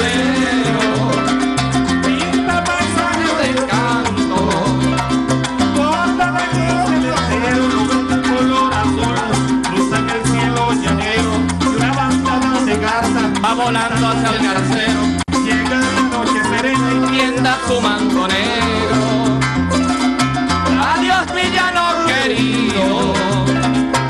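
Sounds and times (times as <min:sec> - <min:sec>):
string band playing: 0:00.0 - 0:24.0.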